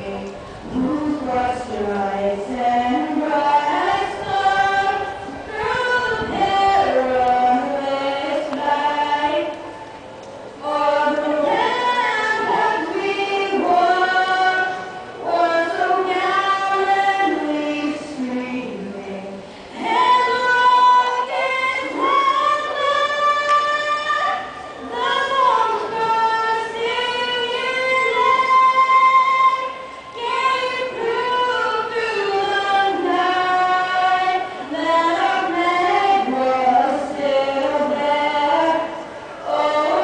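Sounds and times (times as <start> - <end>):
girl singing unaccompanied: 0.0 - 9.7, 10.6 - 40.0.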